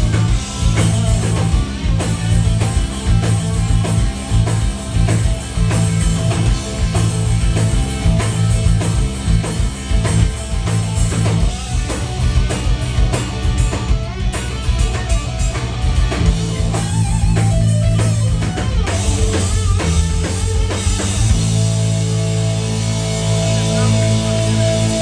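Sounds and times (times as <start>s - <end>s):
bass guitar: 0.0s - 25.0s
drum kit: 0.0s - 25.0s
electric guitar: 0.0s - 25.0s.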